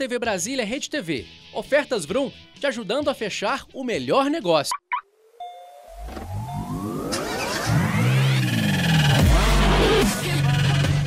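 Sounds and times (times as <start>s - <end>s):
electronic music: 4.7s - 10.4s
car engine revving: 5.9s - 10.8s.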